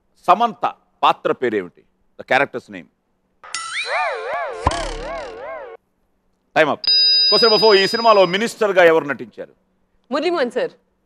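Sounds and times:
warbling electronic tone: 3.5 - 5.8.

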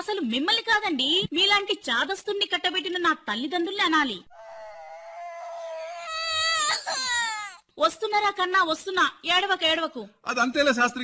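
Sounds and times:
baby crying: 4.3 - 7.6.

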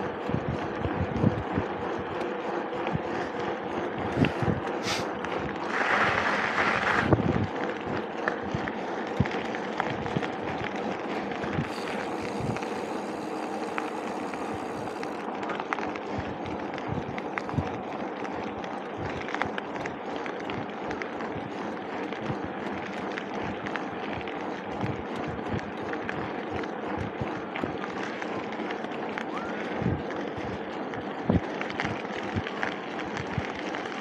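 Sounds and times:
bike rattles and clicks: 0.0 - 34.0
bike tyres rolling on asphalt: 0.0 - 34.0.

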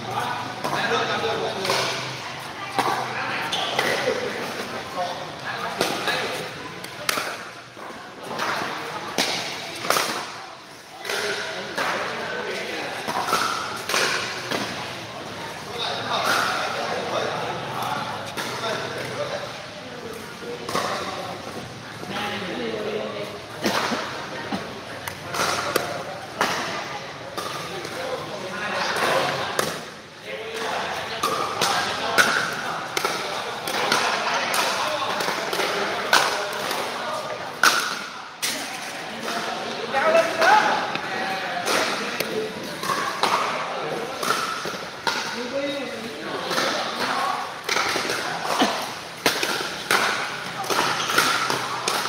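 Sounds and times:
players chatting: 0.0 - 52.0
paddles hitting plastic ball: 46.5 - 48.6.

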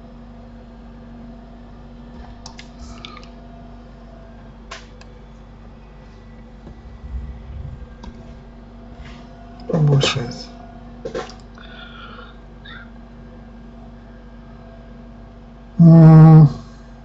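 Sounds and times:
low electrical hum: 0.0 - 17.0
soft low bumps: 6.6 - 9.4.

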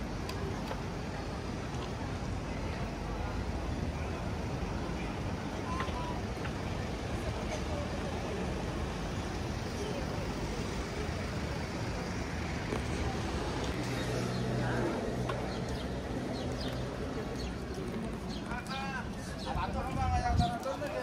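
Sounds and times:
indistinct voices: 0.0 - 21.0
road traffic rumble: 0.0 - 21.0.

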